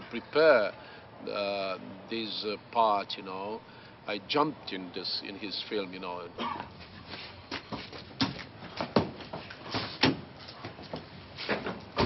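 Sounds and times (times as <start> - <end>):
knocks and thumps against a car: 7.5 - 12.0.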